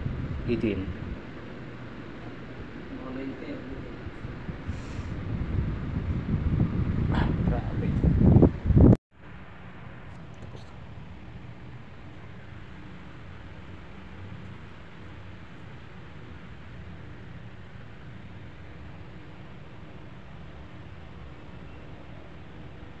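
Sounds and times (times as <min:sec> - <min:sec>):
wind buffeting microphone: 0:00.0 - 0:09.0
air conditioner blowing air: 0:00.0 - 0:23.0.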